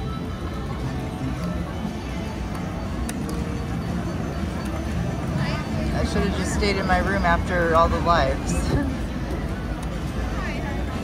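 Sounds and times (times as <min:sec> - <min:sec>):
casino din of machines and people: 0:00.0 - 0:11.0.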